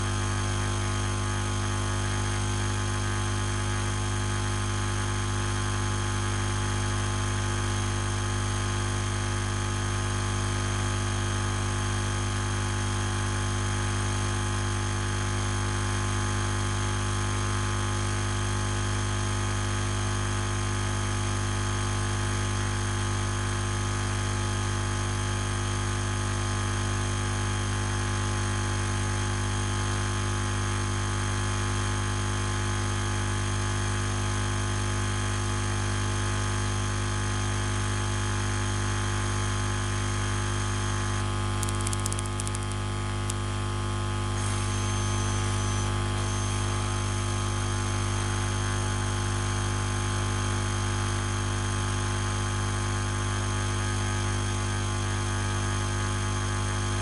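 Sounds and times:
electrical hum and buzz: 40.6s - 47.1s.

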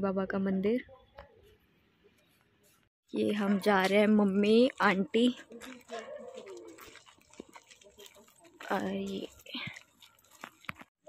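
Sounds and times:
dove cooing: 5.6s - 6.9s.

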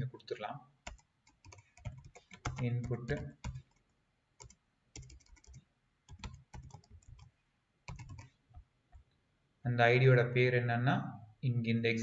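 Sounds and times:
typing on computer keyboard: 0.8s - 7.3s, 7.9s - 8.3s.

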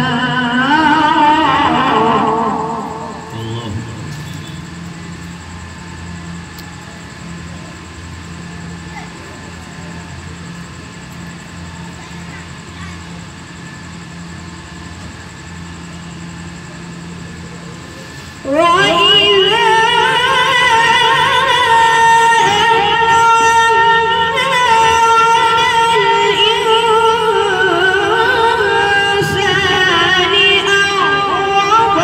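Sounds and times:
boy chanting recitation: 0.0s - 4.7s, 18.4s - 32.0s
electrical hum and hiss: 0.0s - 32.0s.

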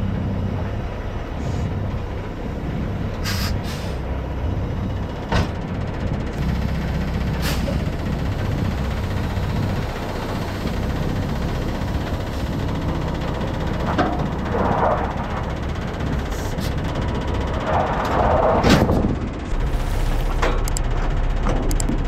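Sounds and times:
diesel truck engine running: 0.0s - 22.0s.

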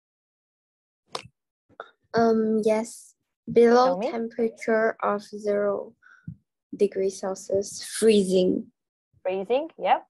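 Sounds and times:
person speaking: 2.2s - 5.9s.

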